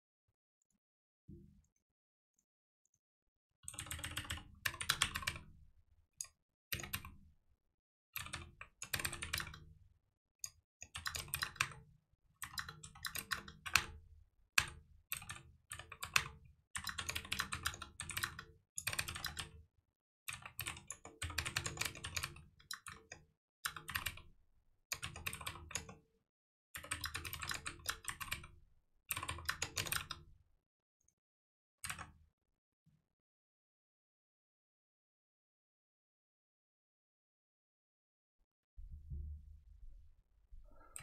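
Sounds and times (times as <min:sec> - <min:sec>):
typing on computer keyboard: 0:03.7 - 0:05.5, 0:06.7 - 0:07.2, 0:08.2 - 0:09.7, 0:10.8 - 0:11.8, 0:12.4 - 0:14.0, 0:14.6 - 0:19.6, 0:20.3 - 0:24.2, 0:24.9 - 0:26.0, 0:26.8 - 0:28.5, 0:29.1 - 0:30.2, 0:31.8 - 0:32.1.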